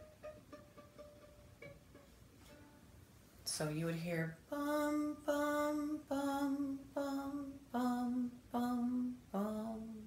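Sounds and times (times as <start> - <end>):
violin strings plucked softly: 0.0 - 3.4.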